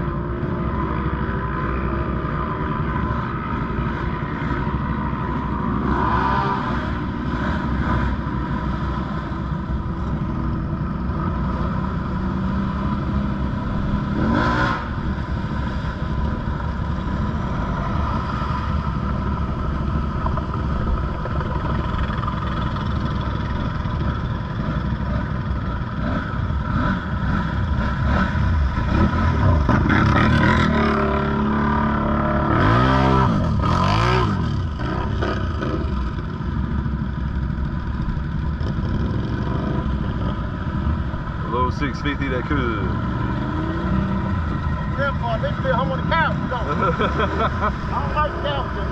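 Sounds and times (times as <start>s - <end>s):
quad engines revving: 5.6s - 48.9s
vehicles wading through muddy water: 38.6s - 48.9s.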